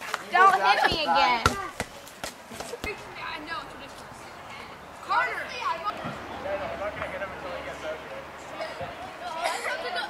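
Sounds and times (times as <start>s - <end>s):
faint children's voices: 0.3s - 6.8s, 8.4s - 10.0s.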